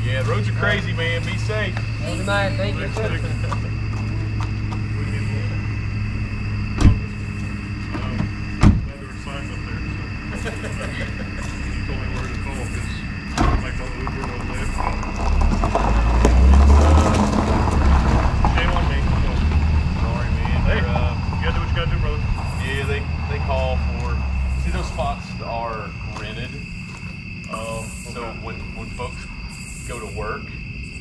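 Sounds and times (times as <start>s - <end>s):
distant voices talking: 0.0s - 30.8s
car engine and tyre rumble: 0.0s - 31.0s
crickets chirping: 0.0s - 31.0s
gravel crunching: 0.0s - 31.0s.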